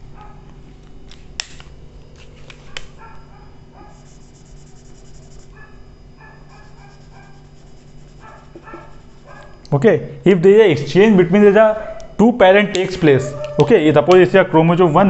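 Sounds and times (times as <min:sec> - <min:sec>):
marker squeaking on whiteboard: 0:03.8 - 0:09.6.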